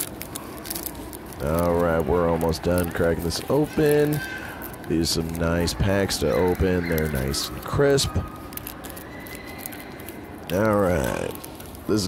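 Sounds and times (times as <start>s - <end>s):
faint background hum: 0.0s - 12.0s
foil pack crinkling: 0.0s - 12.0s.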